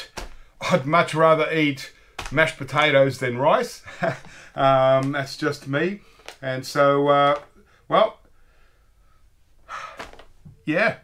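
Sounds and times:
man speaking: 0.0s - 8.2s, 10.6s - 11.0s
breath drawn in: 8.4s - 10.3s.

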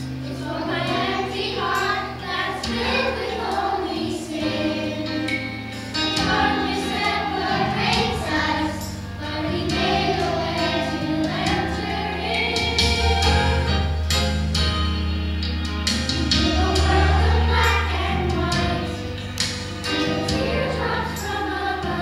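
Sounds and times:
children's choir singing: 0.0s - 13.9s, 16.2s - 22.0s
low instrumental accompaniment: 0.0s - 22.0s.

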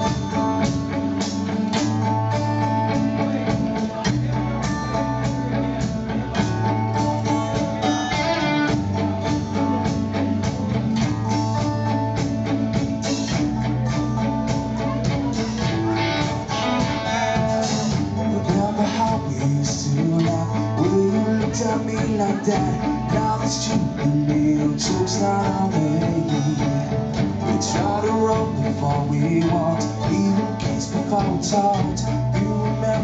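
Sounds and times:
bass guitar: 0.0s - 33.0s
drum kit steady beat: 0.0s - 33.0s
electric guitars: 0.0s - 33.0s.

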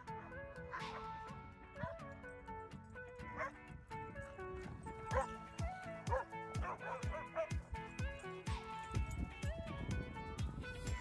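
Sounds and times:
background music with low beat: 0.0s - 11.0s
dog barking: 3.3s - 3.6s, 5.1s - 5.4s, 6.1s - 7.6s.

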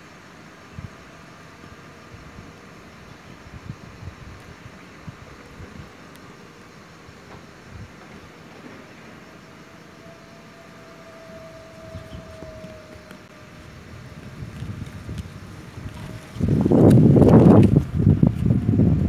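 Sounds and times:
steady hiss: 0.0s - 19.0s
faint held tone: 8.9s - 13.5s.

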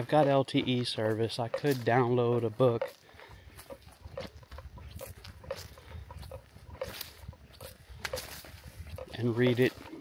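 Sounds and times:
footsteps crunching on a trail: 0.0s - 10.0s
microphone handling noise: 3.6s - 10.0s
wind rumble: 3.9s - 9.3s.

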